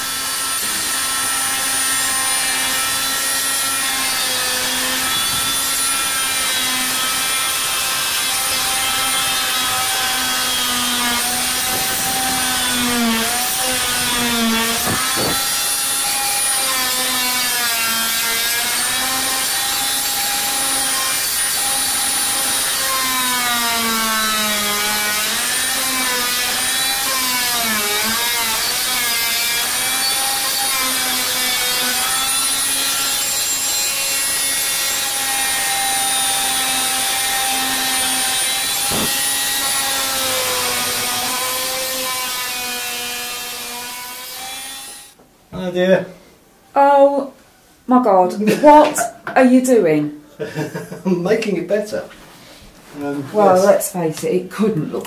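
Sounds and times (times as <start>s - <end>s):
power tool motor whine: 0.0s - 45.2s.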